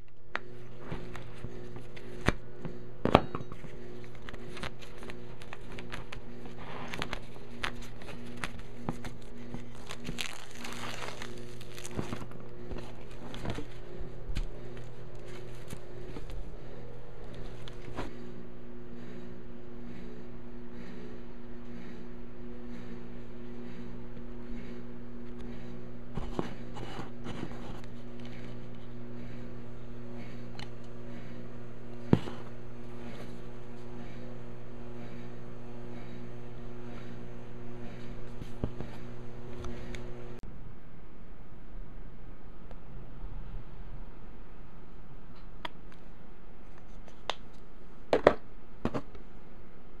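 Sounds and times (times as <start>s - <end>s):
electrical hum: 0.0s - 50.0s
steady low background tone: 0.0s - 50.0s
plastic wrap crinkling: 6.9s - 16.4s.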